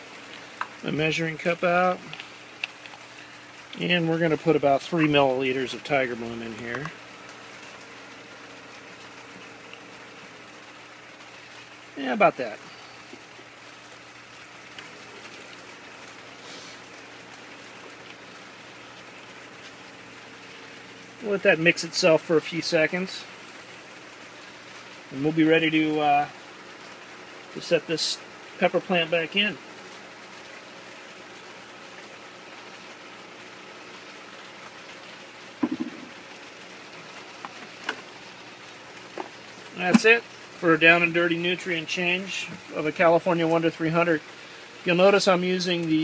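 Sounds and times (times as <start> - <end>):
faint steady hum: 0.0 - 46.0.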